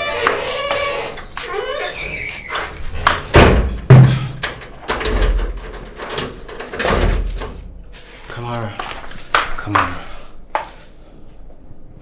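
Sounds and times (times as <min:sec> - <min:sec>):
heavy wooden door shutting: 0:02.9 - 0:07.6
loud knocks: 0:03.0 - 0:04.4.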